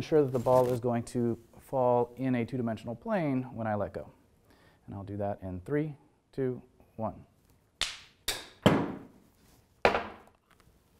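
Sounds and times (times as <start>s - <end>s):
balls bouncing on hard floor: 8.3s - 9.2s, 9.8s - 10.3s.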